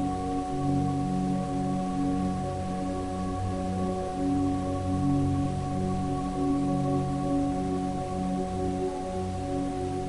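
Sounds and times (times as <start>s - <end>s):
ambient music with bell-like drones: 0.0s - 10.0s.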